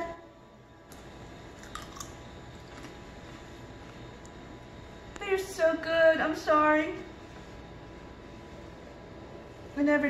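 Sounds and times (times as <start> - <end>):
person chewing crunchy food: 1.5 - 3.3.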